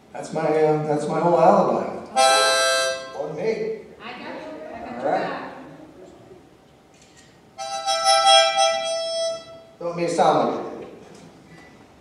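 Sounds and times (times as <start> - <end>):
harmonica held chord: 2.1 - 3.3, 7.6 - 9.8.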